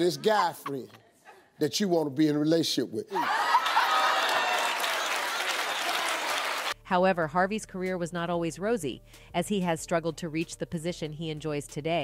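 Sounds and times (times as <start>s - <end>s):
studio audience applauding: 3.2s - 6.8s.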